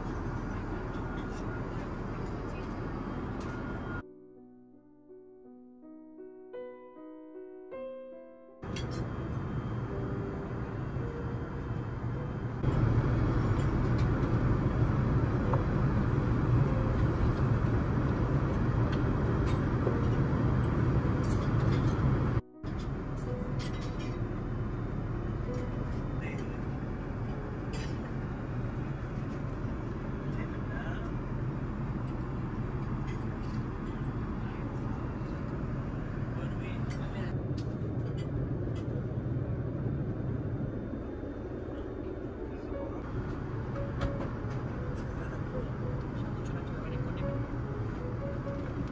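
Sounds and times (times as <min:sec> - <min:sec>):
airplane cabin drone: 0:00.0 - 0:04.0, 0:08.6 - 0:48.9.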